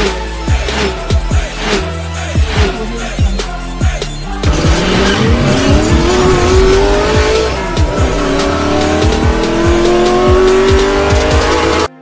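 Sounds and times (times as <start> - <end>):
intro music: 0.0 - 12.0
racing car engine accelerating: 4.4 - 12.0.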